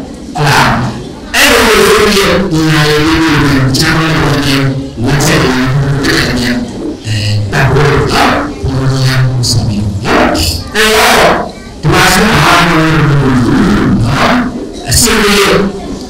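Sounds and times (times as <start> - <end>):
man talking into a microphone: 0.4 - 16.0.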